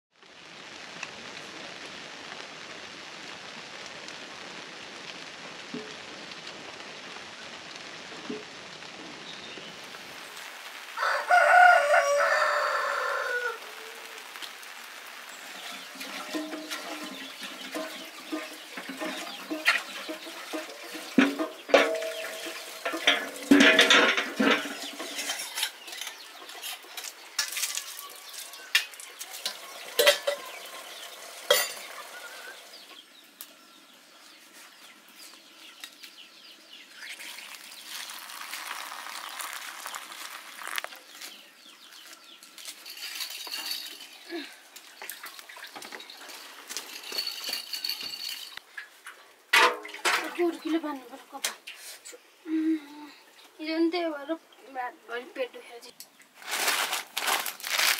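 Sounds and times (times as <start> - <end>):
rooster crowing: 11.0 - 14.2
water running from a tap: 15.5 - 26.1, 26.9 - 32.8, 37.0 - 40.9
chickens clucking: 15.6 - 27.2, 28.5 - 33.0.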